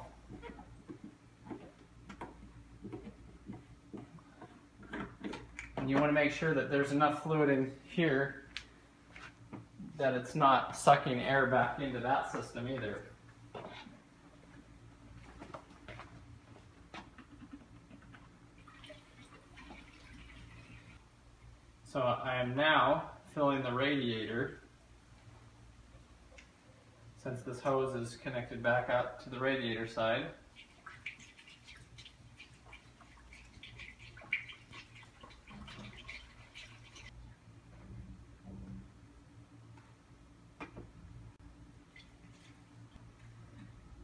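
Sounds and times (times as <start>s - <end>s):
liquid trickling into hose: 18.6s - 21.0s, 30.5s - 37.2s
steady low hum: 35.0s - 44.0s.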